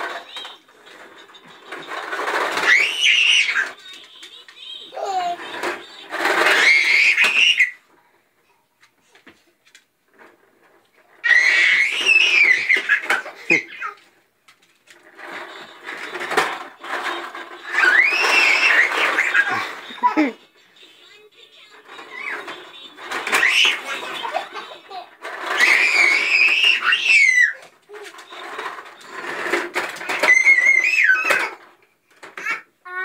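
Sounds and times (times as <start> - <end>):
toy lawnmower rattling on tile: 0.0 - 7.8, 10.1 - 32.7
high-pitched squeal: 15.4 - 19.7.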